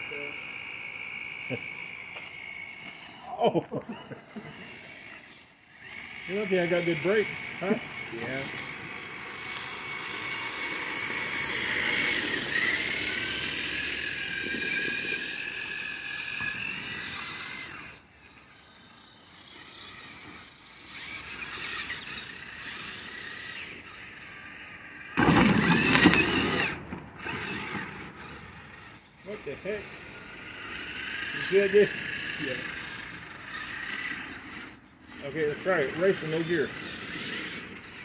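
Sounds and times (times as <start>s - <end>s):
electric motor and gear whine: 0.0s - 38.0s
loud brief noisy burst: 25.2s - 27.8s.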